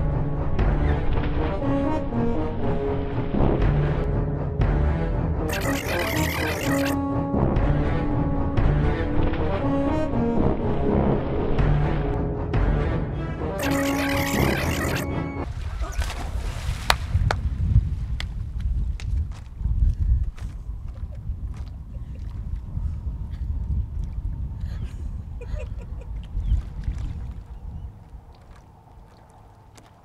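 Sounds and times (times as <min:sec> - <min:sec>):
dramatic music: 0:00.0 - 0:15.5
water splashing: 0:13.6 - 0:17.6, 0:26.1 - 0:30.0
wind rumble on microphone: 0:15.4 - 0:30.0.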